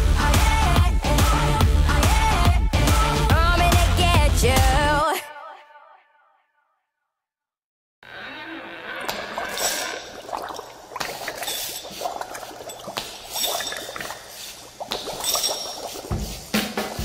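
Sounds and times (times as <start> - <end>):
liquid pouring sound effects: 9.0 - 17.0.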